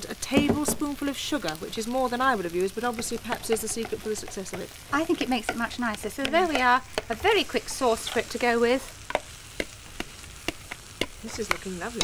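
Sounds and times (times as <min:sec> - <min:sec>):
omelette sizzling in a pan: 0:00.0 - 0:12.0
sharp crackles: 0:00.0 - 0:12.0.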